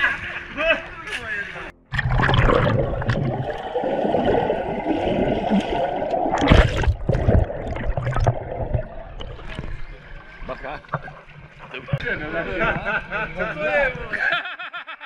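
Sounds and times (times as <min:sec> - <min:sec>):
splashing: 0:01.9 - 0:12.0
muffled underwater rushing and bubbling: 0:01.9 - 0:13.2.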